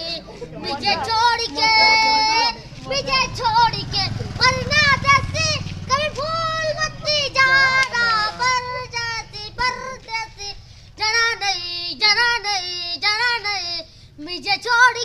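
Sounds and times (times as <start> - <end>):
boy singing: 0.0 - 15.0.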